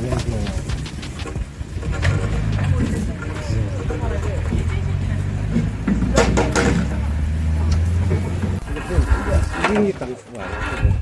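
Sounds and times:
truck engine pulling away: 0.0s - 10.6s
people's voices: 0.0s - 11.0s.

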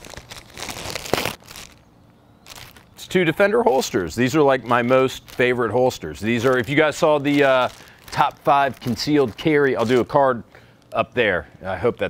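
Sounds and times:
plastic mailer crinkling and tearing: 0.0s - 10.9s.

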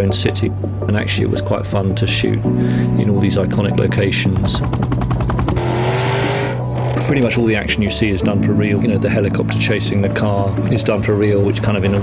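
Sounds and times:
car engine accelerating hard: 4.6s - 7.1s
road and tyre noise: 4.7s - 7.3s.

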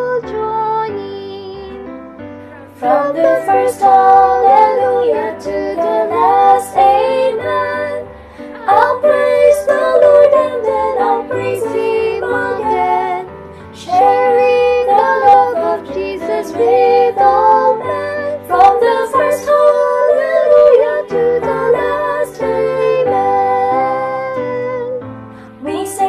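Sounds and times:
women singing in harmony: 0.0s - 1.9s, 2.6s - 26.0s.

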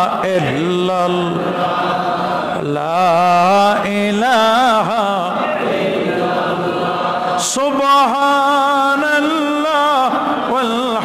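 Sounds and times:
man chanting melodically: 0.0s - 5.9s, 7.3s - 11.0s.

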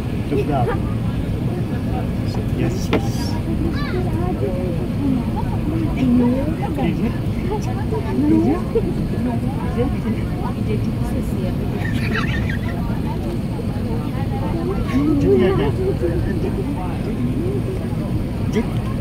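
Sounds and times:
airplane cabin roar: 0.0s - 19.0s
passengers talking: 0.0s - 19.0s.

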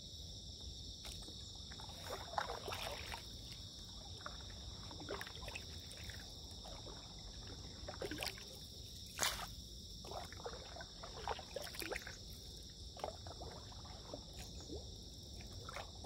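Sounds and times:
paddle splashing in water: 1.0s - 16.0s.

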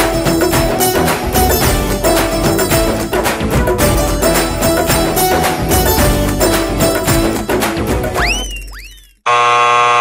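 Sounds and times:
loud electronic buzzer: 9.2s - 10.0s.

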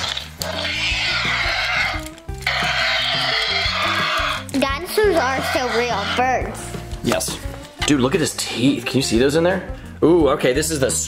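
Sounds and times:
toy dinosaur screeches: 0.0s - 4.5s, 5.2s - 6.3s.

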